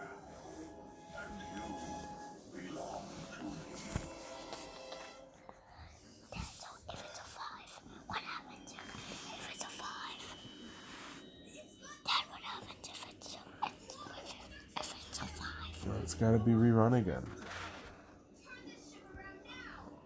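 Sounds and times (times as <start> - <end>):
faint low speech: 11.5 - 17.5.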